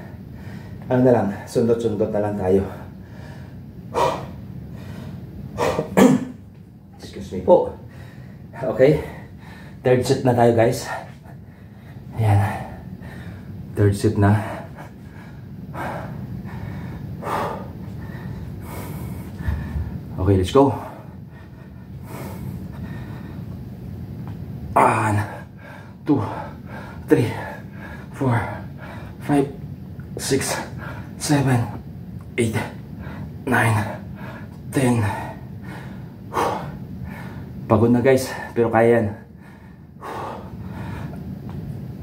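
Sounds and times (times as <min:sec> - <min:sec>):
man breathing hard: 0:00.0 - 0:01.4, 0:02.7 - 0:06.0, 0:07.8 - 0:09.9, 0:10.8 - 0:13.7, 0:14.4 - 0:20.1, 0:20.7 - 0:23.6, 0:24.9 - 0:29.2, 0:30.5 - 0:31.2, 0:32.7 - 0:37.7, 0:39.2 - 0:41.6
steady low hum: 0:00.0 - 0:42.0.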